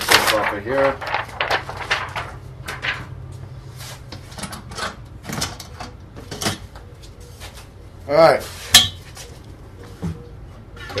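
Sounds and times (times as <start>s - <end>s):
rustling film: 0.0s - 4.3s.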